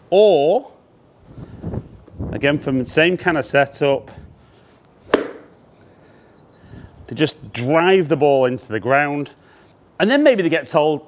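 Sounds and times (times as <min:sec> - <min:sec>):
golf club striking ball: 0:05.1 - 0:05.6.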